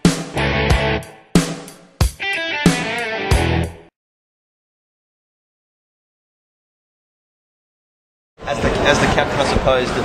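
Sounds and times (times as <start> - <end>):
rock music with distorted guitar: 0.0 - 3.9.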